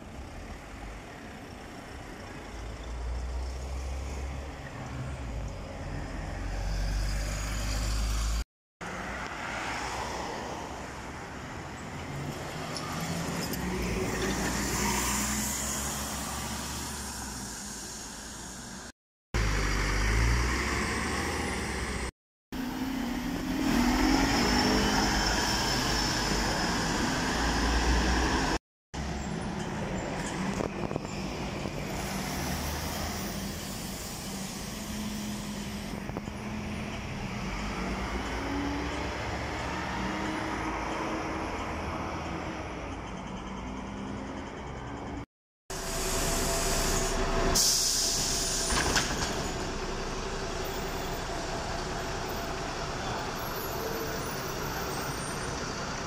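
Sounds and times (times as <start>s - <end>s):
bus engines revving: 0.0s - 56.0s
city buses passing: 0.0s - 56.0s
street traffic: 0.0s - 56.0s.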